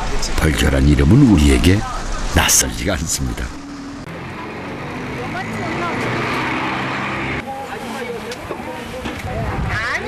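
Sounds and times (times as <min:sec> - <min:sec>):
people talking: 0:00.0 - 0:03.6, 0:04.3 - 0:06.4, 0:07.4 - 0:10.0
motor vehicle running: 0:00.0 - 0:07.4.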